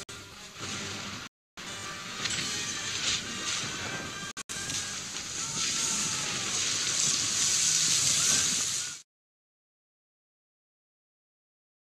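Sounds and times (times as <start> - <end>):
faint music: 0.0 - 9.0.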